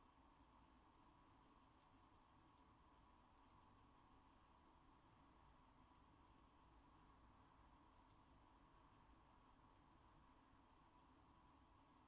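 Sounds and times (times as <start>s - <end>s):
faint short clicks: 6.2s - 6.5s.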